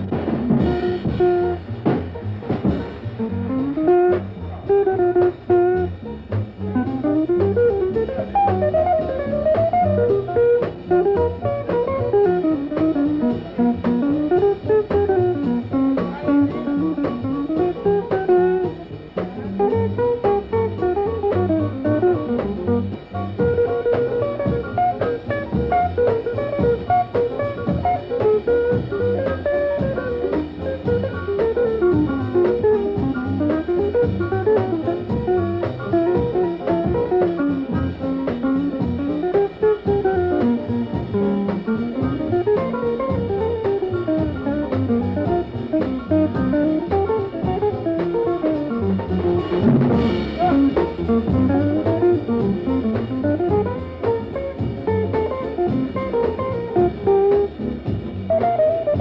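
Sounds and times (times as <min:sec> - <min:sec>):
bass: 0:00.0 - 0:59.0
drums: 0:00.0 - 0:59.0
jazz guitar solo: 0:00.0 - 0:59.0.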